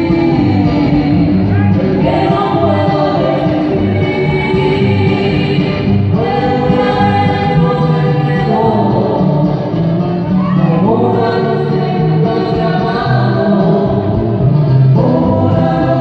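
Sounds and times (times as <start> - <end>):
man and woman singing: 0.0 - 9.8, 10.5 - 14.2, 14.9 - 16.0
acoustic guitar: 0.0 - 16.0.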